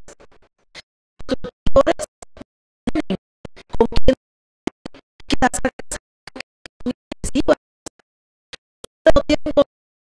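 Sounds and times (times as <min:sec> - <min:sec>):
woman's amplified speech: 0:07.2 - 0:07.6.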